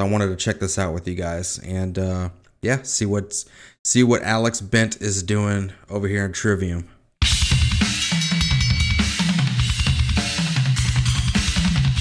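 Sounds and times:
heavy metal song: 0:07.2 - 0:12.0
rapid double bass drum: 0:07.2 - 0:12.0
ringing cymbal bell: 0:07.8 - 0:10.1.

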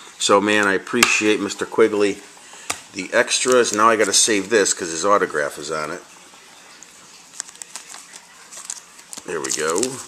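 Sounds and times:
plastic sleeve crinkling: 0:03.3 - 0:04.8, 0:06.7 - 0:10.0.

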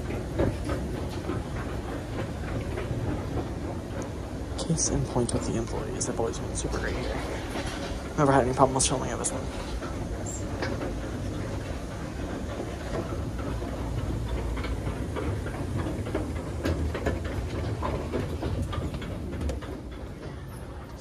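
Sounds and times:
escalator rumbling: 0:00.0 - 0:21.0
escalator steps clicking and rattling: 0:00.0 - 0:21.0.

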